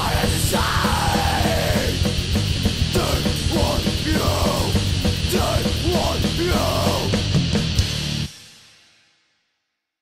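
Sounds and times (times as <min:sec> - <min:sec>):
metal song with distorted guitars: 0:00.0 - 0:08.9.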